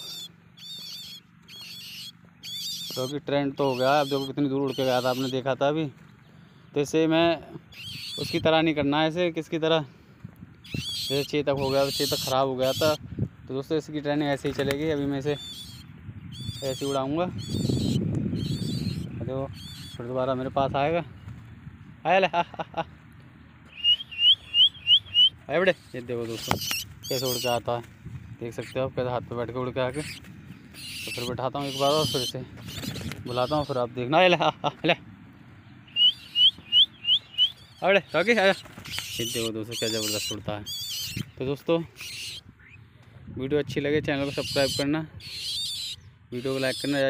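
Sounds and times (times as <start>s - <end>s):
bird warbling song: 0.0s - 9.5s, 10.5s - 21.5s, 23.4s - 34.8s, 35.6s - 42.9s, 44.0s - 47.0s.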